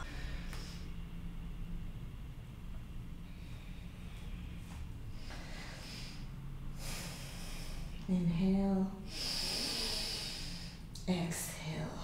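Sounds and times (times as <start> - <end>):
woman breathing: 0.0 - 1.0, 3.2 - 8.1, 9.0 - 10.9
faint low hum: 0.0 - 12.0.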